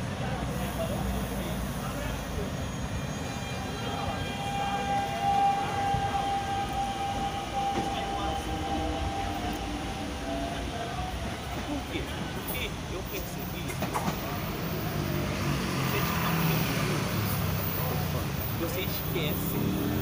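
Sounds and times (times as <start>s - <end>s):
wheels rumbling on rails: 0.0s - 20.0s
train motor whine: 2.4s - 12.4s.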